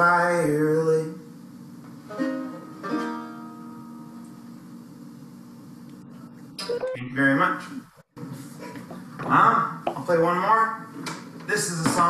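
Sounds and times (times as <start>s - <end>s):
banjo chords ringing: 2.1s - 4.1s.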